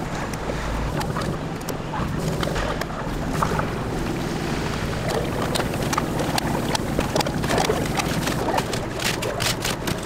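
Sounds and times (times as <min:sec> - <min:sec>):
steady low hum: 0:00.0 - 0:10.0
crackles and pops: 0:00.3 - 0:10.0.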